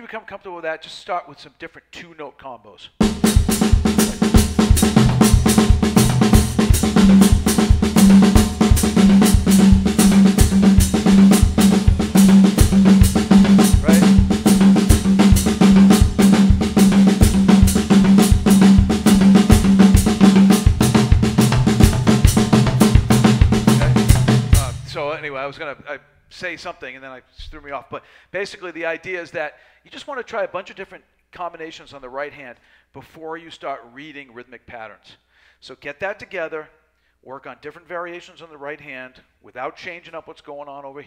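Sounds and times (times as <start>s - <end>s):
drum kit groove: 3.0s - 25.3s.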